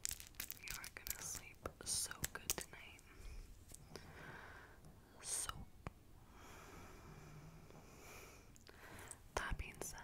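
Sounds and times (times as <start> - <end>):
acrylic nail click: 0.1 - 3.1
person whispering: 0.6 - 3.2, 5.1 - 5.8, 9.3 - 10.0.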